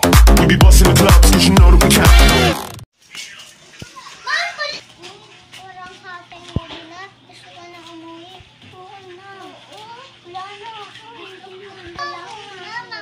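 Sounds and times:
hip-hop music with heavy beat: 0.0s - 2.8s
young children talking: 3.7s - 13.0s.

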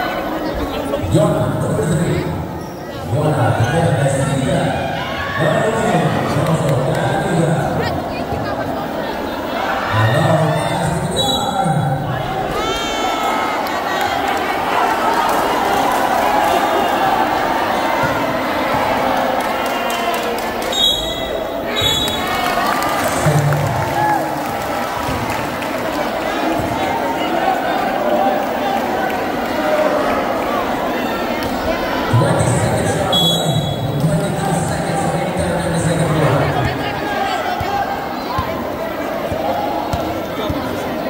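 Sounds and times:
crowd noise and voices: 0.0s - 41.0s.

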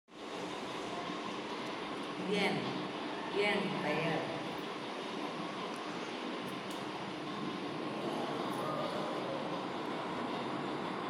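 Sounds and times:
steady hum and hiss: 0.1s - 11.0s.

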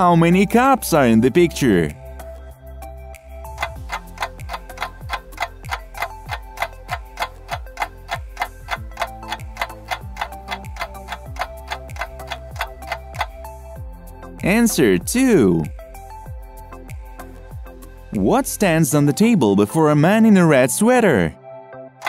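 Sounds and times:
soft background music: 0.0s - 22.0s
clock ticking: 3.5s - 13.6s.

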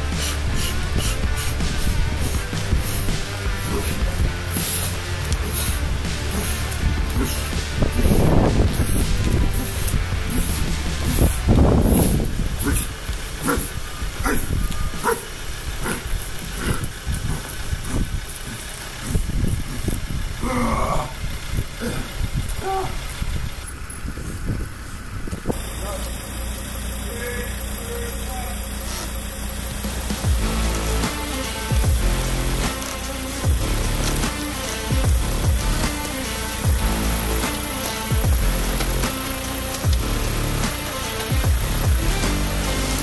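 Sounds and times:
low engine rumble: 0.0s - 43.0s.

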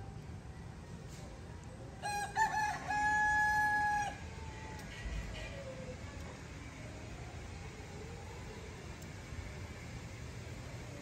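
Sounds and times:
rooster crowing: 2.0s - 4.6s.

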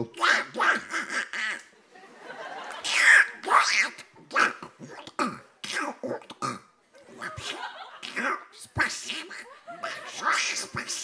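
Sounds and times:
man imitating duck quacking: 0.0s - 1.7s, 2.8s - 11.0s.

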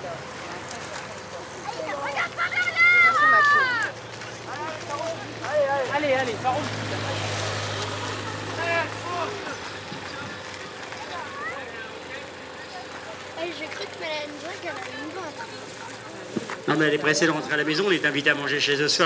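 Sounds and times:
distant people talking: 0.0s - 19.0s.

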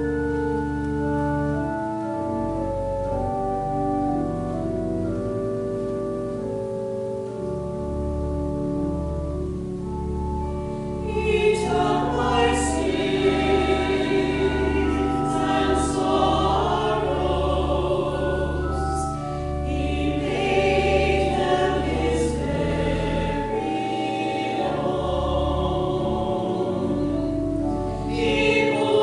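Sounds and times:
held organ notes: 0.0s - 29.0s
choir singing a hymn: 11.0s - 29.0s.

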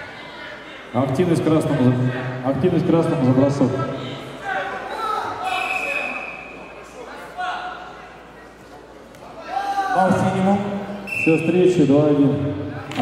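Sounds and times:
people shouting in a hall: 3.9s - 8.4s, 9.2s - 11.1s.

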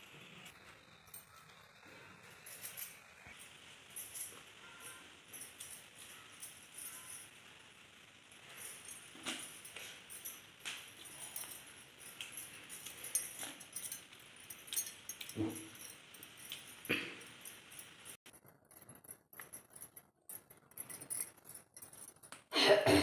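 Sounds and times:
metal bangles clinking: 1.0s - 22.5s.

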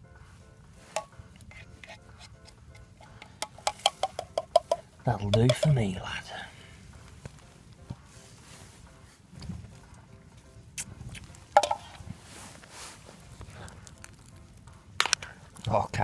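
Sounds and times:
faint footsteps on moorland: 0.0s - 16.0s
rustling: 6.9s - 15.7s.

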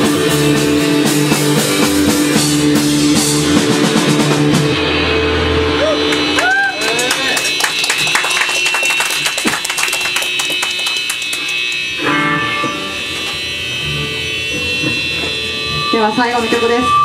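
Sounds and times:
drums striking hard: 0.0s - 13.4s
electric bass: 0.0s - 17.0s
electric guitars: 0.0s - 17.0s
steady high whine: 0.0s - 17.0s.

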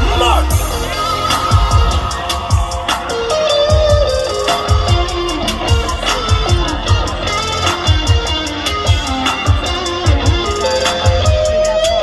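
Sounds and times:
electric guitar lead line: 0.0s - 12.0s
kick drum beat: 3.7s - 7.1s.

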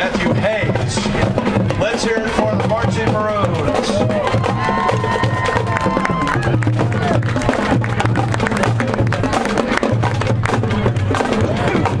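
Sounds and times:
bass drum notes: 0.0s - 12.0s.

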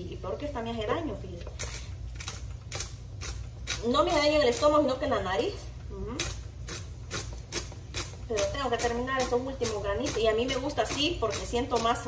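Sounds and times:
pepper grinder crunching: 1.4s - 4.8s.

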